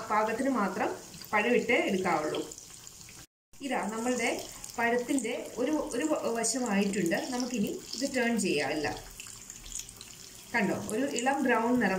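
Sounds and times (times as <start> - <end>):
woman talking: 0.0 - 2.5, 3.6 - 9.0, 10.6 - 11.9
food sizzling in hot oil: 0.0 - 11.9.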